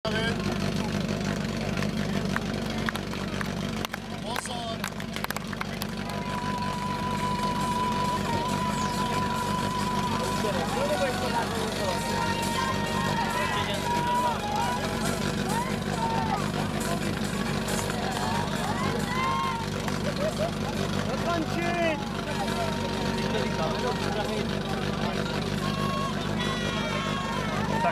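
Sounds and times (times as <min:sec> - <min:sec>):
pump engine running: 0:00.0 - 0:27.9
spectators shouting: 0:05.8 - 0:27.9.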